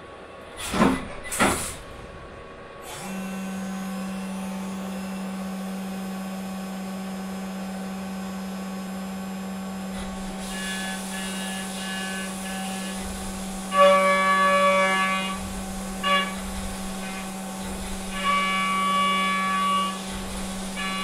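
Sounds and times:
low machine hum: 1.8s - 21.0s
high-pitched milling cutter tone: 10.4s - 21.0s.

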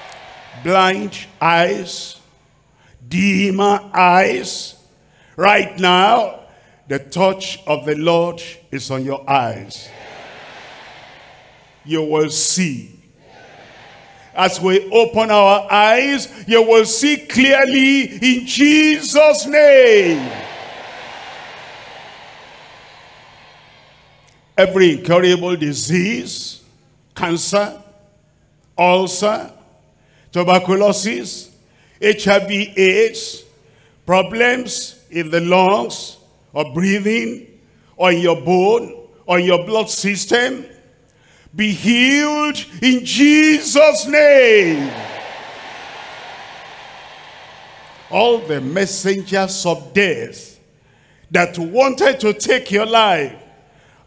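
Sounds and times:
faint background hiss: 0.0s - 54.0s.

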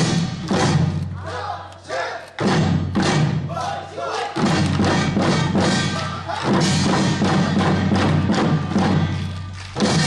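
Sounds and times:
barrel drums struck with sticks: 2.4s - 3.5s
traditional accompaniment bending melody: 4.4s - 10.0s.

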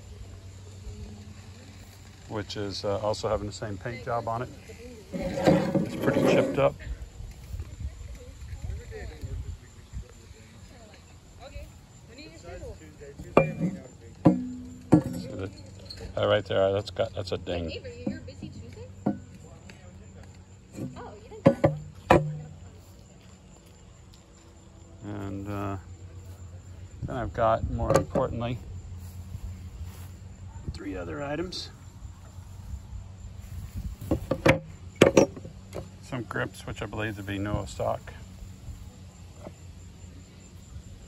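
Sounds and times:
insect trill: 0.0s - 41.0s.

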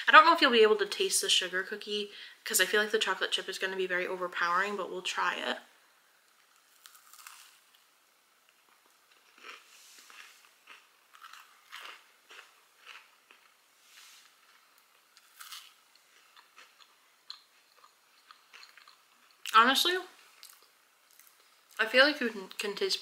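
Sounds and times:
person chewing cookie crunches: 6.3s - 19.6s, 20.3s - 21.8s.

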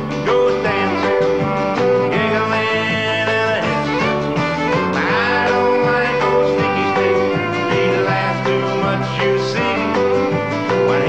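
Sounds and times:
country children's song with guitar: 0.0s - 11.0s.

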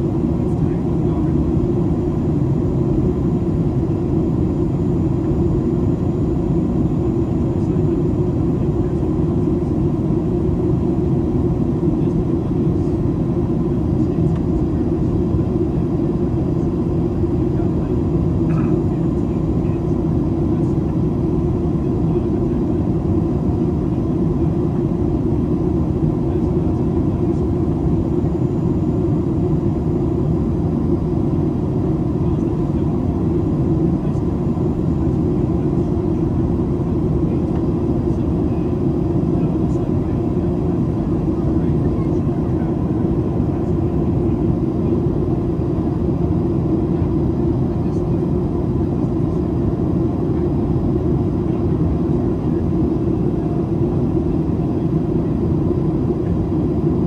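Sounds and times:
airflow rush in plane cabin: 0.0s - 57.0s
jet engines droning: 0.0s - 57.0s.

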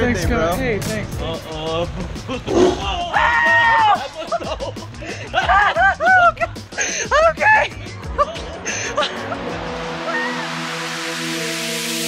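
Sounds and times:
background music: 0.0s - 12.0s
tiger growling: 2.5s - 2.8s.

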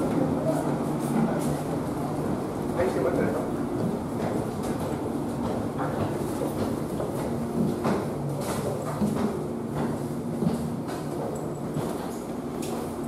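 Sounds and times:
footsteps climbing stairs: 0.0s - 13.0s.

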